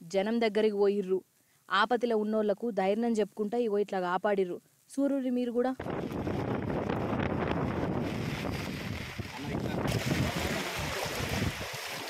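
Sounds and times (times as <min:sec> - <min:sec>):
wind buffeting microphone: 0:05.8 - 0:11.8
floodwater washing: 0:05.8 - 0:12.0.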